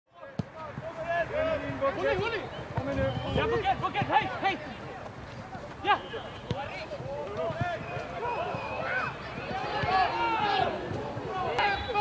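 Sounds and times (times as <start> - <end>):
players calling and shouting: 0.1 - 12.0.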